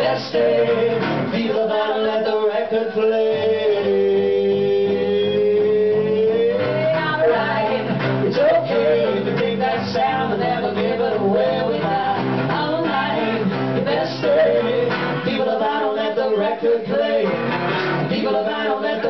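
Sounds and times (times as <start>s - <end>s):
man and woman singing: 0.0s - 19.0s
band with string instruments: 17.2s - 18.2s.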